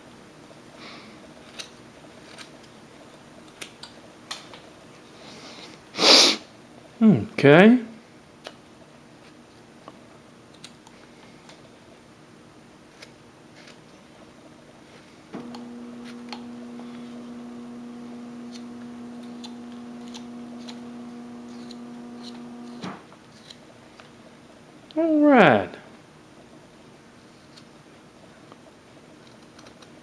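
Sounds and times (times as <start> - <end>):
steady hum: 15.3 - 23.2.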